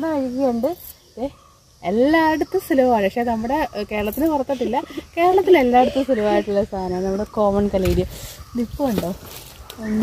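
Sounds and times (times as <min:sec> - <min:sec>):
woman talking: 0:00.0 - 0:09.2, 0:09.8 - 0:10.0.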